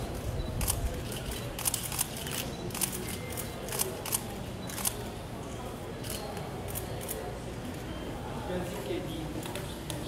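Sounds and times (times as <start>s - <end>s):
low room murmur: 0.0s - 10.0s.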